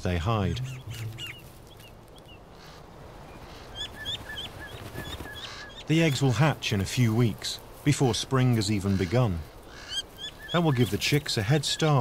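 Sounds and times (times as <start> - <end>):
faint background noise: 0.0 - 12.0
bird calling high notes: 0.4 - 4.2.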